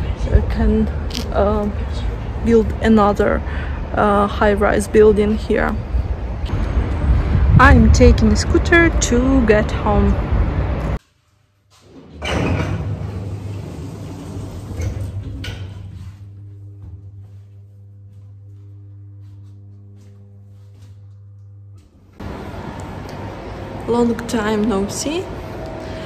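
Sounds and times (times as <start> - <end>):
lift doors sliding: 11.7 - 16.1
low electrical hum: 12.2 - 26.0.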